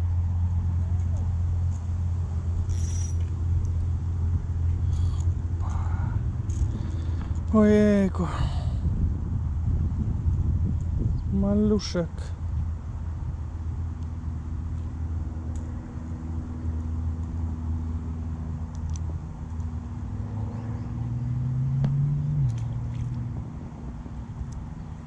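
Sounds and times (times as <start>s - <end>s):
vehicle engine humming: 0.0s - 25.0s.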